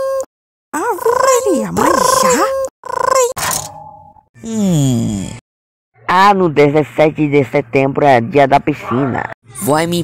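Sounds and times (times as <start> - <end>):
person imitating alarm clock ringing: 0.8 - 3.4
low voice groaning: 4.4 - 5.4.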